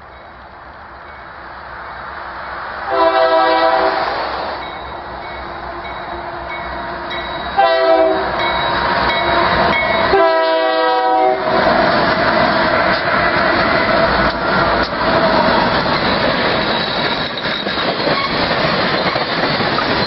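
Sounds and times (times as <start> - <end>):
passing train rumbling: 0.0 - 20.0
locomotive air horn blasts: 2.9 - 4.2, 7.6 - 8.4, 10.1 - 11.6.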